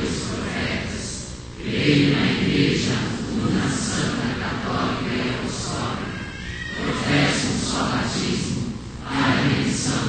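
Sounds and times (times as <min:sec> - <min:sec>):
choir and congregation singing: 0:00.0 - 0:10.0.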